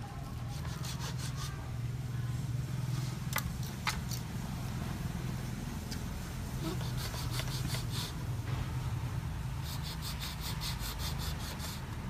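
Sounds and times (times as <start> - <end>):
steady low hum: 0.0 - 12.0
knife scraping bamboo strip: 0.3 - 1.6, 6.6 - 8.2, 9.6 - 11.9.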